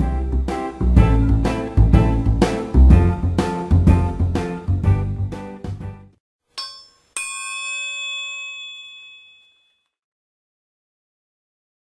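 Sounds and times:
bell-like metallic chimes: 6.6 - 9.8.

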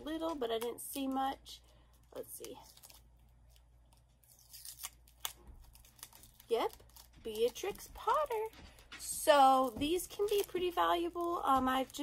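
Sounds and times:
plastic crackles: 0.0 - 12.0
plastic wrapping crinkling: 0.0 - 12.0.

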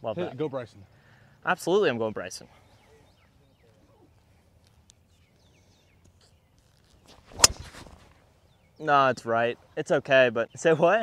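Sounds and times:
golf club striking ball: 7.3 - 8.0.

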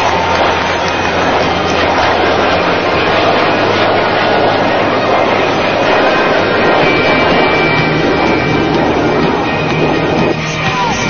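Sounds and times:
jet fighter engine roar: 0.0 - 11.0.

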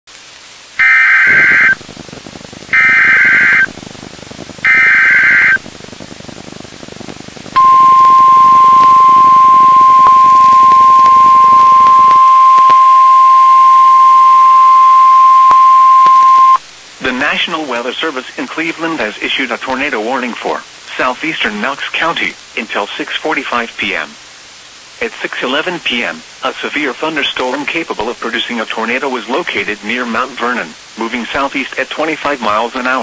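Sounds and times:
faint radio static: 0.1 - 33.0
harsh digital data bursts: 0.8 - 1.8, 2.7 - 3.7, 4.6 - 5.6
steady single-pitch alarm tone: 0.8 - 1.8, 2.8 - 3.7, 4.6 - 5.6, 7.6 - 16.6.

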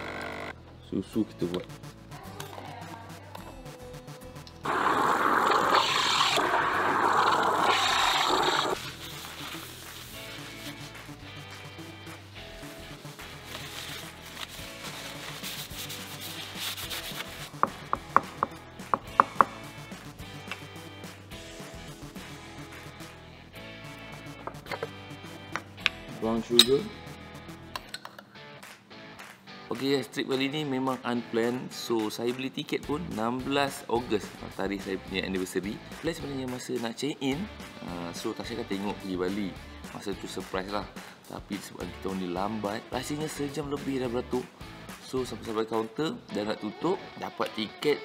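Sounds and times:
steam wand frothing milk: 4.7 - 9.8.

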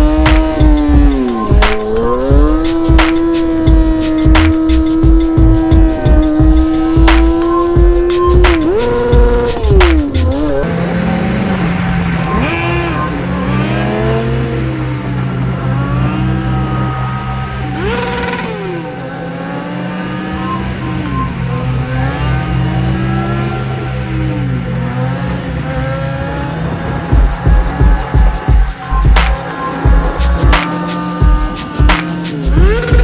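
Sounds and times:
steady low tones: 0.0 - 12.3, 27.1 - 33.0
motorcycle engine revving: 0.0 - 33.0.

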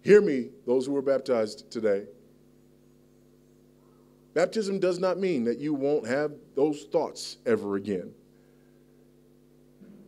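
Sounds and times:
man speaking: 0.0 - 2.2, 4.4 - 8.2
faint low hum: 0.0 - 10.0.

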